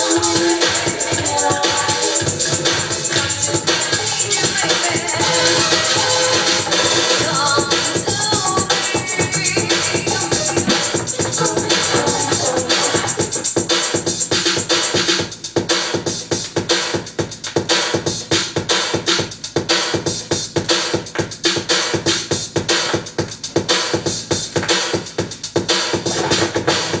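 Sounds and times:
dance music with driving beat: 0:00.0 - 0:27.0.

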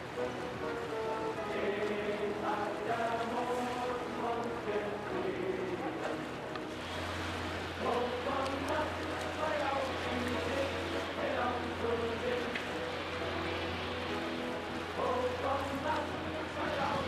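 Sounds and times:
music: 0:00.0 - 0:17.0.

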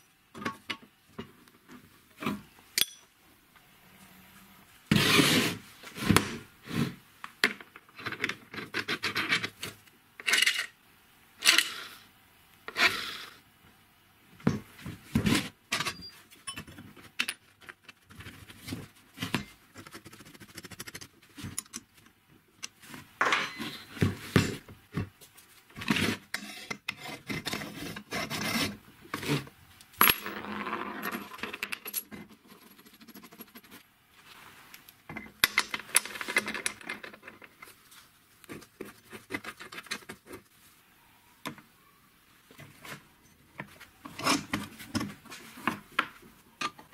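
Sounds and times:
metallic clinks and scrapes: 0:23.2 - 0:24.6, 0:30.0 - 0:33.8.

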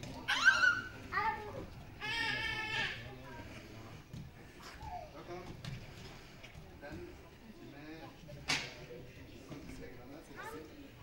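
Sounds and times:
child's high-pitched shout: 0:00.2 - 0:01.5.

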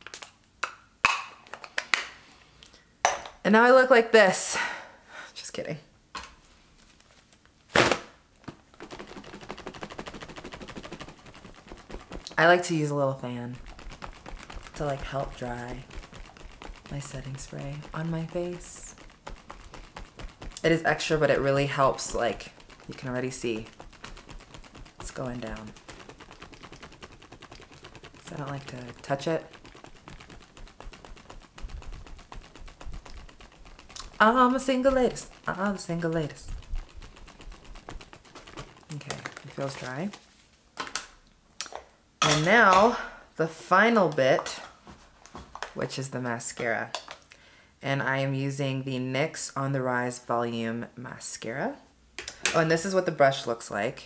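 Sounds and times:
handheld fan ticking: 0:08.8 - 0:39.9.

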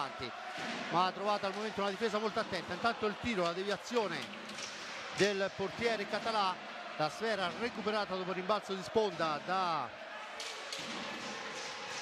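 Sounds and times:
faint hockey stick clacks: 0:10.4 - 0:12.0.

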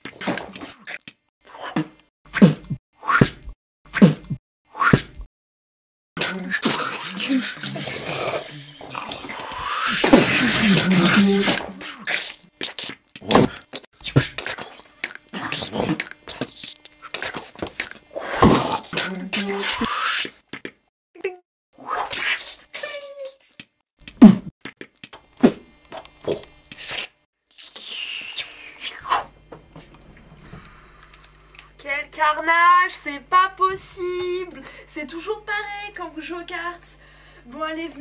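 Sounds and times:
sliding pitched mouth sounds: 0:06.2 - 0:20.7, 0:26.2 - 0:29.4.

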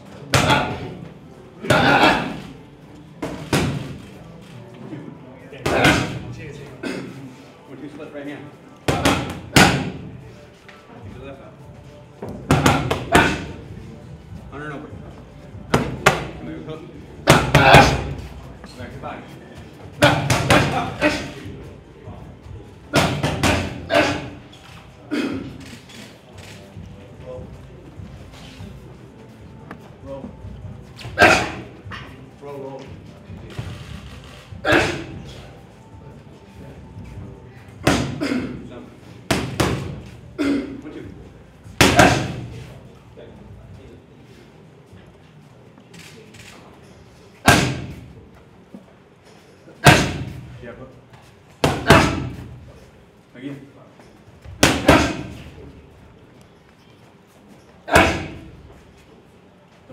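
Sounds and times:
punches smacking focus mitts: 0:47.5 - 0:48.0.

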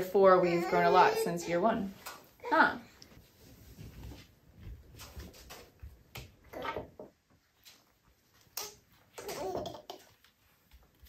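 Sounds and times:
toddler laughing and babbling: 0:08.6 - 0:10.2.

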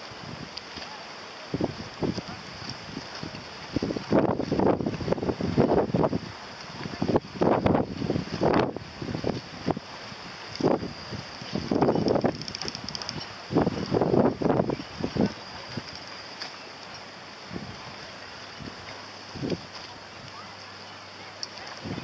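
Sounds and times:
faint high hiss: 0:00.0 - 0:22.0
wind buffeting microphone: 0:01.5 - 0:16.1, 0:17.4 - 0:19.7, 0:21.8 - 0:22.0.

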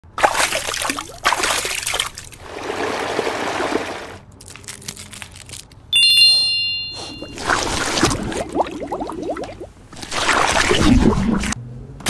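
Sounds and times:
paintbrush splashing in water: 0:00.2 - 0:04.0, 0:07.2 - 0:11.6
bright ringing ding: 0:05.9 - 0:07.4.

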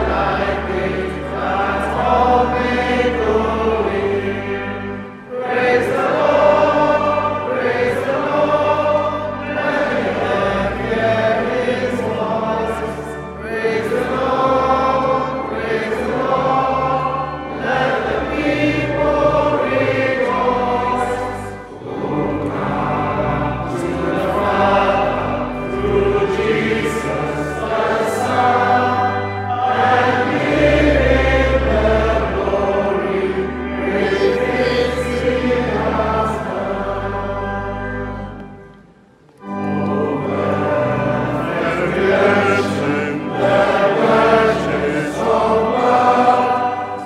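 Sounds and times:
congregation singing a hymn: 0:00.0 - 0:47.0
low sustained accompanying notes: 0:00.0 - 0:47.0.

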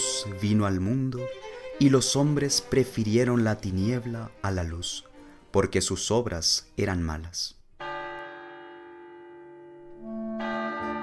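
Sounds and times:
church bell ringing: 0:07.8 - 0:11.0.

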